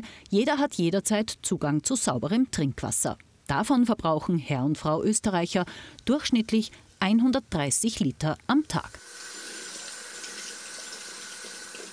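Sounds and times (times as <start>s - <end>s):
tap water running on hands: 9.0s - 11.9s.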